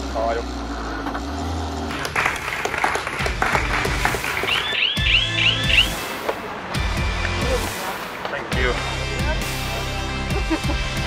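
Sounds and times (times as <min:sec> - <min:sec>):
crowd clapping: 0:01.9 - 0:05.1
background music with steady beat: 0:01.9 - 0:11.0.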